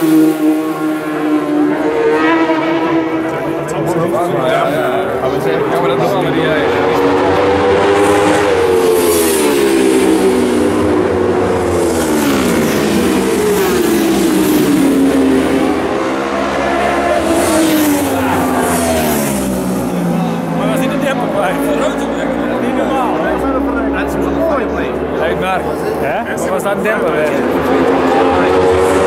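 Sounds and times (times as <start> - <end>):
racing motorcycles passing: 0.0 - 29.0.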